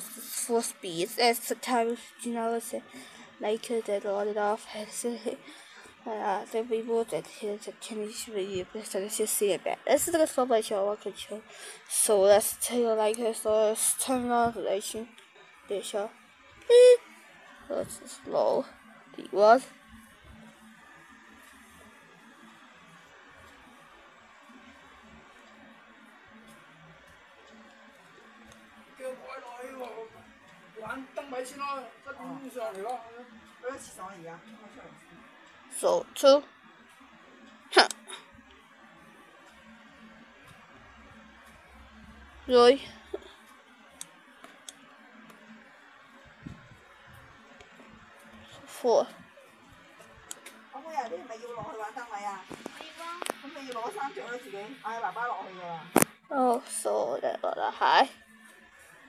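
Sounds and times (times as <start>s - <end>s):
ceiling fan whirring: 0.0s - 59.0s.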